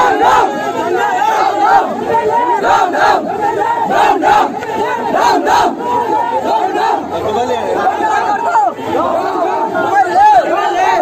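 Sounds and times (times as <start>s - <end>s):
crowd of men shouting: 0.0s - 11.0s.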